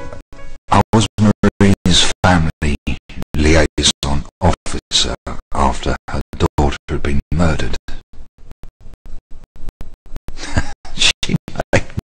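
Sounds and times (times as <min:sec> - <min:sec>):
chopped speech fragments: 0:00.7 - 0:08.0, 0:10.9 - 0:12.0.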